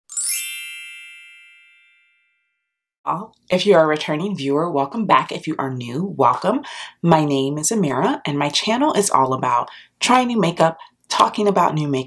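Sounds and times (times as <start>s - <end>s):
bright shimmering chime: 0.1s - 2.4s.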